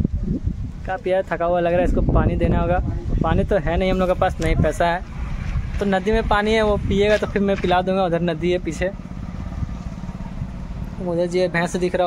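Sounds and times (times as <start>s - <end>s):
wind buffeting microphone: 0.0s - 12.0s.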